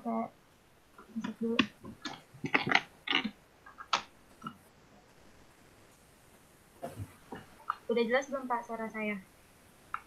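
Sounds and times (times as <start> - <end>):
voice over video call: 7.7 - 9.2.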